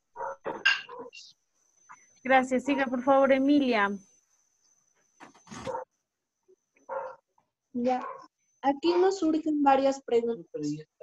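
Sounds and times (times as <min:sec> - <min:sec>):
dog barking: 0:00.2 - 0:01.2, 0:05.6 - 0:05.9, 0:06.9 - 0:07.3, 0:08.0 - 0:08.3.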